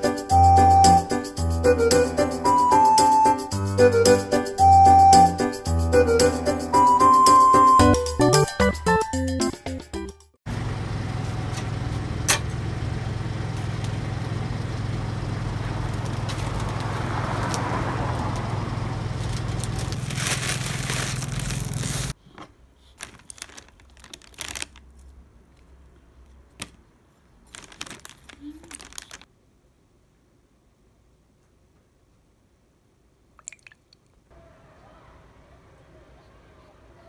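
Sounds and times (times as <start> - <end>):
music cue: 0.0 - 10.2
aluminium foil crinkling: 15.9 - 17.6, 19.1 - 22.2, 22.8 - 25.2, 27.4 - 29.3.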